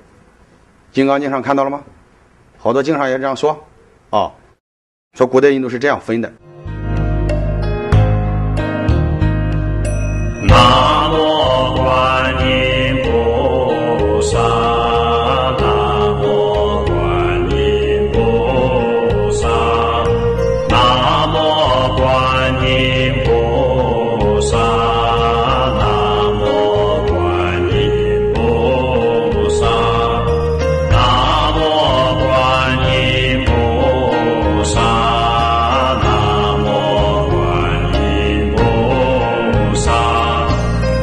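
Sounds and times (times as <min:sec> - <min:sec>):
musical accompaniment: 0:06.4 - 0:41.0
slow devotional chant: 0:10.4 - 0:41.0.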